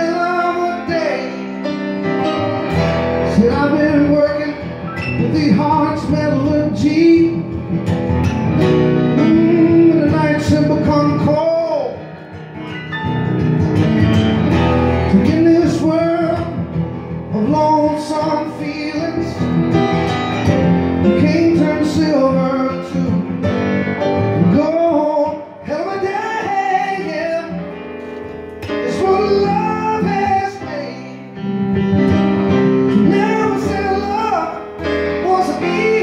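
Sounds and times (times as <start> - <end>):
man singing: 0.0 - 7.8, 9.0 - 12.1, 14.9 - 19.8, 20.4 - 27.9, 28.6 - 36.0
acoustic guitar strumming: 0.0 - 36.0.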